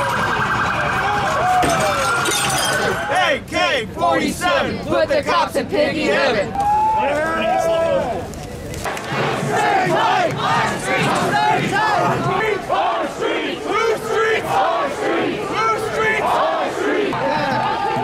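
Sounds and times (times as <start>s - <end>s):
crowd shouting: 0.0s - 8.2s, 9.0s - 18.0s.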